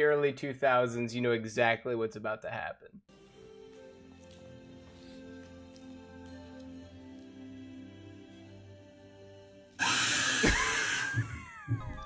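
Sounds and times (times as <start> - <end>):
soft calm music from tv: 3.1 - 9.8
loud jump-scare scream: 9.8 - 12.0.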